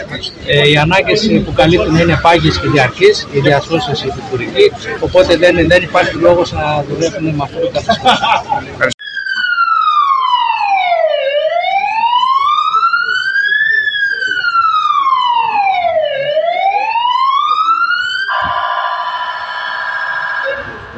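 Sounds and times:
ambulance siren: 1.2s - 5.7s, 9.0s - 20.9s.

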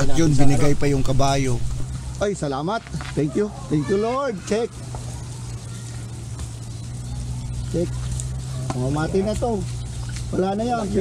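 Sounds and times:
background hiss: 0.0s - 11.0s
steady low hum: 0.0s - 11.0s.

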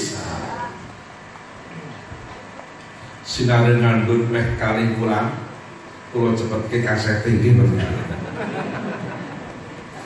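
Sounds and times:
seated gathering over loudspeakers: 0.0s - 10.0s.

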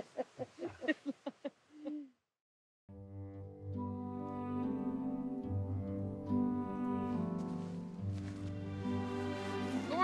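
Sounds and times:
bowed string music: 2.9s - 10.0s.

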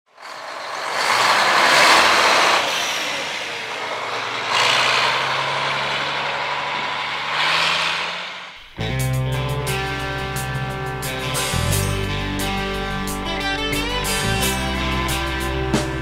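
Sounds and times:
diesel truck engine pulling away: 0.1s - 16.0s.

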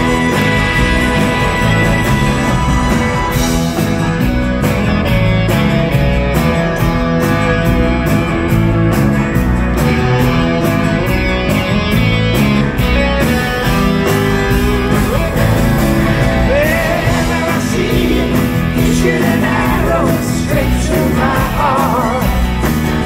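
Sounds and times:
live rock band playing: 0.0s - 23.0s.

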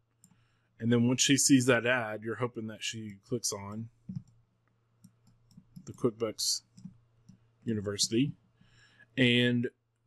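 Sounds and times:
computer mouse clicks: 3.7s - 6.1s, 6.7s - 7.4s.

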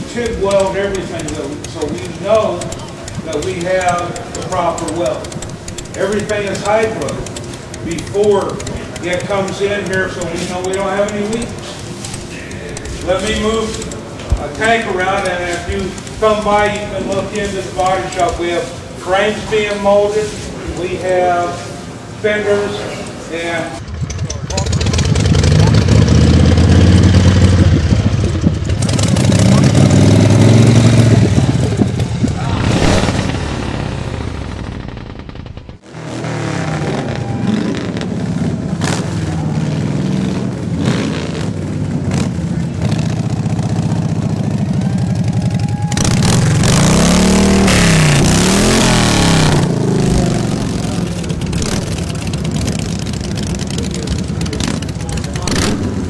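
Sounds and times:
engine revving: 0.0s - 18.5s, 23.8s - 56.0s
motorcycle engines running: 0.0s - 56.0s.

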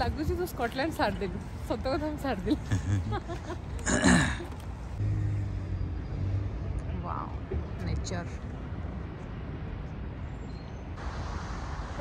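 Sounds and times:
vehicle engine passing: 5.0s - 7.0s.

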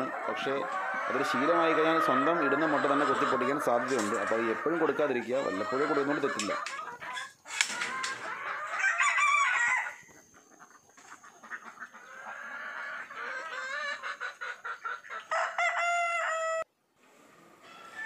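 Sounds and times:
rooster crowing: 0.0s - 6.5s, 7.8s - 10.1s, 15.3s - 16.7s, 17.6s - 18.0s
chickens clucking: 0.0s - 16.5s.

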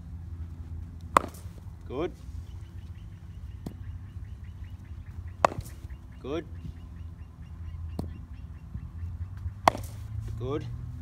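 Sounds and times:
low outdoor rumble: 0.0s - 11.0s
bird chirping: 1.9s - 11.0s.

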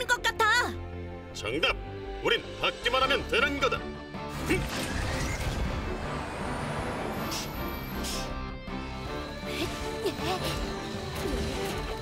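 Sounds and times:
cartoon background music: 0.0s - 12.0s
mechanical vehicle and robot effects: 4.3s - 8.0s, 10.6s - 12.0s.

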